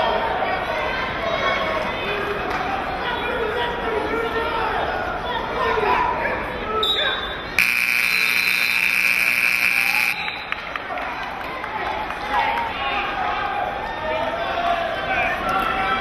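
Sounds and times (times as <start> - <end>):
crowd noise: 0.0 - 16.0
scoreboard buzzer: 7.6 - 10.5.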